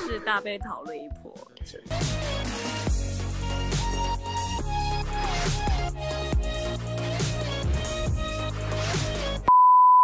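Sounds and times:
background music with deep bass: 0:00.0 - 0:09.5.

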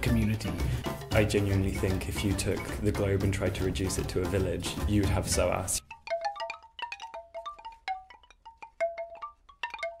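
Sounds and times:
chime-like tuned percussion notes: 0:05.8 - 0:10.0.

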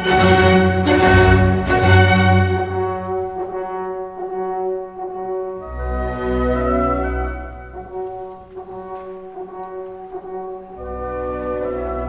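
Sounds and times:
held brass and wind chords: 0:00.0 - 0:12.0.

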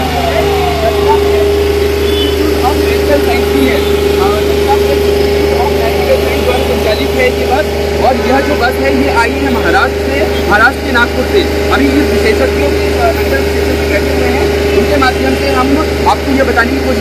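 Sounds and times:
engine idling: 0:00.0 - 0:17.0.

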